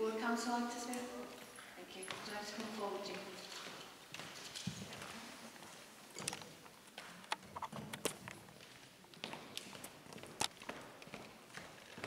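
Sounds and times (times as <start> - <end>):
footsteps on hard floor: 1.3 - 12.0.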